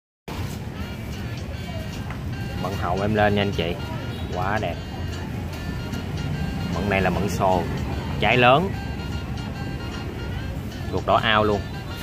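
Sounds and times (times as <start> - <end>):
low rumble of road traffic: 0.3 - 12.0
faint voices: 0.4 - 12.0.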